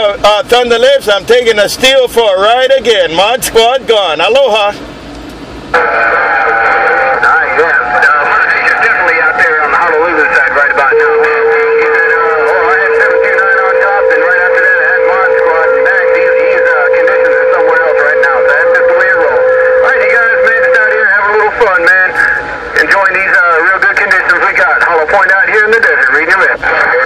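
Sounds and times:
distorted radio voices: 0:05.7 - 0:27.0.

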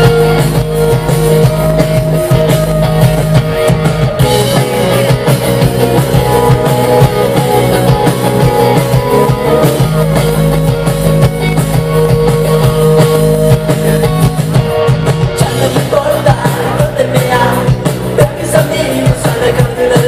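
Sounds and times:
bass guitar: 0:00.0 - 0:20.0
drum kit: 0:00.0 - 0:20.0
electric guitars: 0:00.0 - 0:20.0.

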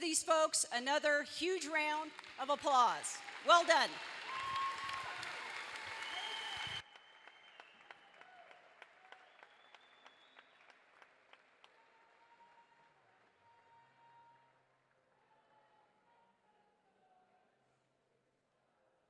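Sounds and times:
crowd applauding: 0:01.9 - 0:14.3
scattered single claps: 0:02.1 - 0:02.4.

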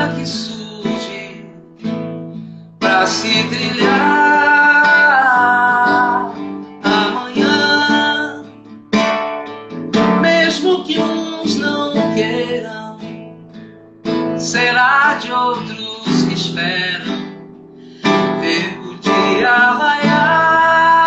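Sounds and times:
strummed acoustic guitar: 0:00.0 - 0:21.0
woman singing: 0:02.9 - 0:06.4, 0:19.0 - 0:21.0.

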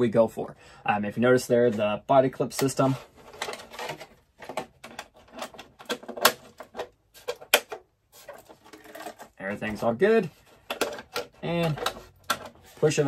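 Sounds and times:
plastic body being handled: 0:01.6 - 0:13.0.

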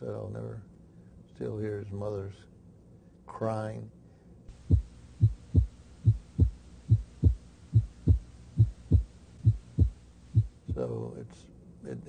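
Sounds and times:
faint hiss: 0:00.0 - 0:12.0
heartbeat thumps: 0:04.5 - 0:10.9.

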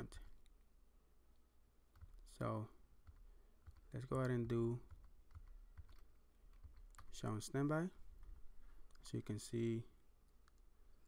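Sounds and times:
typing on computer keyboard: 0:01.9 - 0:02.4, 0:03.0 - 0:07.5.

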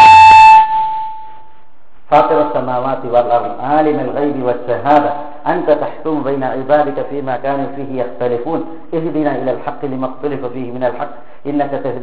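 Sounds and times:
microphone feedback howl: 0:00.0 - 0:02.8.

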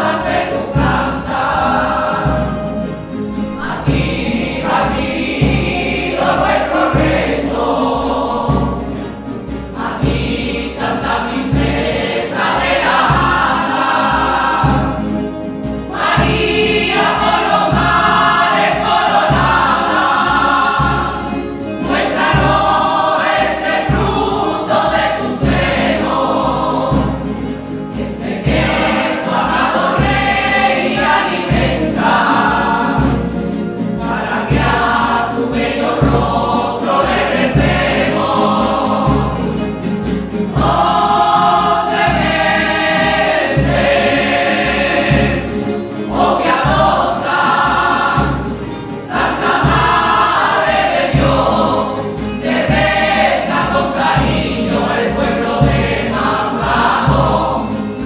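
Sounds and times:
drum beat: 0:00.0 - 0:58.0
men and women singing together: 0:00.0 - 0:58.0
strummed guitars: 0:00.0 - 0:58.0.

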